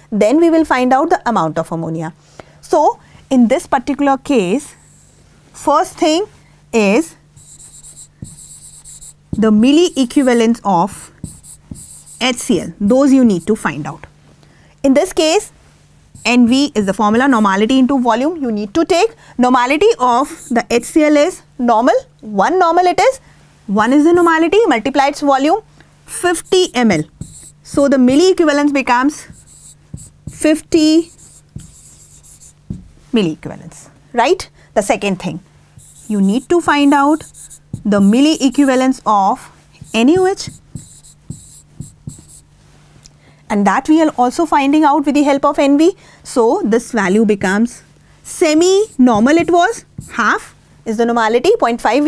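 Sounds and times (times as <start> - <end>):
marker pen scratching on board: 7.4 - 13.6, 16.2 - 17.3, 20.2 - 20.7, 23.9 - 24.5, 26.2 - 32.9, 35.8 - 39.0, 39.8 - 42.5, 48.4 - 50.4.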